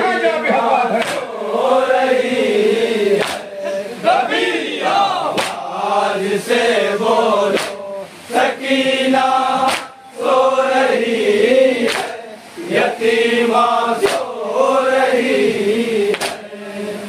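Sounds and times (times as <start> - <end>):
men chanting together: 0.0 - 17.0
hands slapping chests: 1.0 - 1.3, 3.2 - 3.5, 5.3 - 5.6, 7.5 - 7.8, 9.6 - 10.0, 11.8 - 12.2, 14.0 - 14.3, 16.1 - 16.4.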